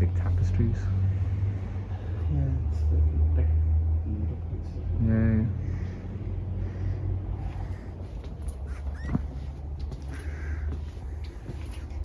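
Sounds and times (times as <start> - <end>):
steady low hum: 0.0 - 12.0
footsteps: 7.4 - 12.0
short rising squeak: 8.7 - 9.4.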